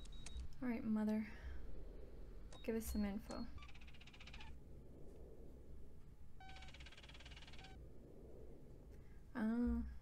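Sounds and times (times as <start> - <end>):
low steady hum: 0.0 - 10.0
rapid electronic chattering beeps: 6.4 - 7.8.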